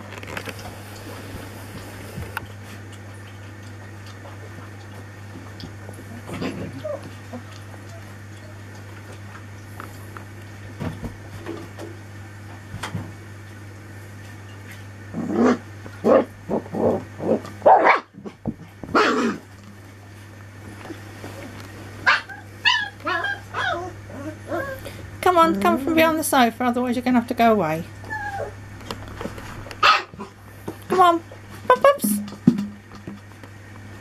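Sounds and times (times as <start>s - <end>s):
steady low hum: 0.0s - 34.0s
puppies barking: 15.4s - 18.2s, 18.9s - 19.4s, 22.0s - 25.0s, 29.8s - 30.4s
high puppy yips: 22.0s - 23.9s, 29.8s - 30.2s.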